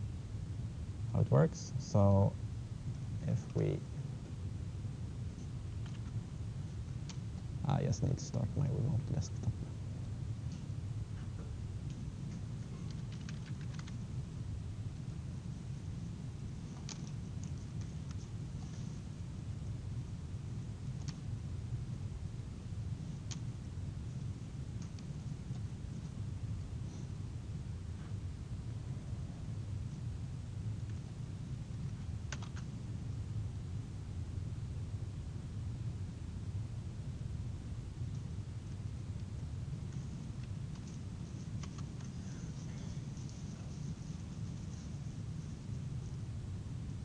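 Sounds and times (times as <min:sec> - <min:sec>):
low room hum: 0:00.0 - 0:47.0
faint clicks: 0:11.9 - 0:14.0, 0:39.9 - 0:43.8
computer keyboard clicks: 0:12.8 - 0:14.0, 0:32.3 - 0:32.7, 0:41.6 - 0:42.1.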